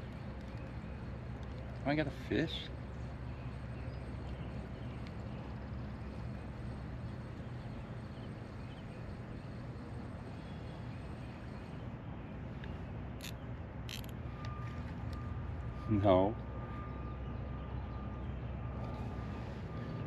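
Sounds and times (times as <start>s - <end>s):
distant road traffic hum: 0.0s - 20.0s.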